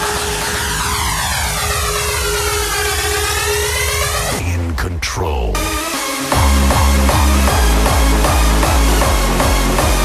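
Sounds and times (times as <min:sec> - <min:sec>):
pulsing low bass: 0:02.2 - 0:10.0.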